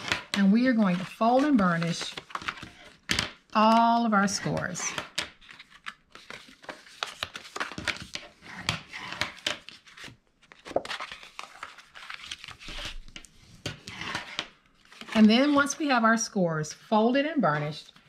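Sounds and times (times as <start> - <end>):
paper rustling: 4.3 - 15.8
bone folder scraping poster board: 8.1 - 10.1, 12.5 - 15.6.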